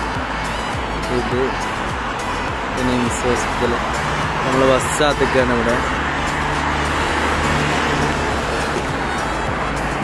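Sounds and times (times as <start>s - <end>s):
cars driving past: 0.0s - 10.0s.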